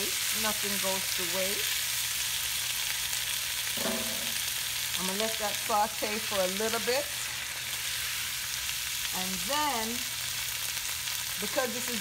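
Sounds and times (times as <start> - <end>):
vegetables sizzling in oil: 0.0 - 12.0.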